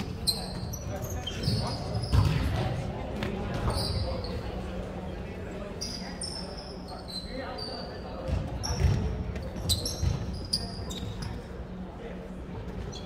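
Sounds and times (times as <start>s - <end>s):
sneakers squeaking on floor: 0.0s - 4.8s, 5.8s - 11.6s, 12.7s - 13.0s
voices chattering: 0.0s - 13.0s
ball bouncing on floor: 8.3s - 10.4s.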